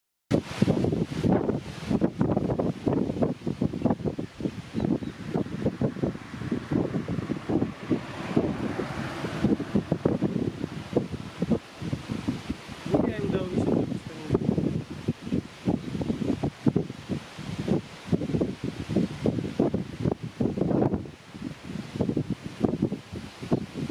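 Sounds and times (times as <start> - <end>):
wind buffeting microphone: 0.3 - 23.9.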